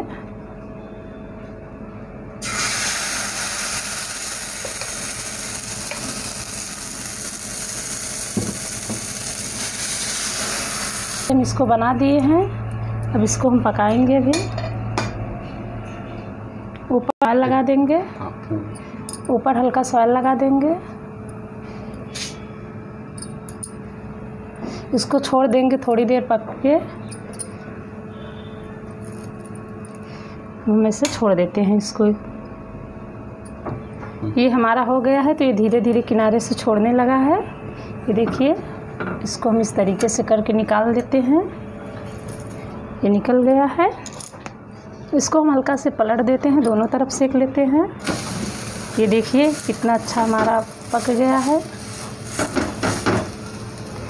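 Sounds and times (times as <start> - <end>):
batter sizzling on hot pan: 2.4 - 11.3, 48.0 - 54.0.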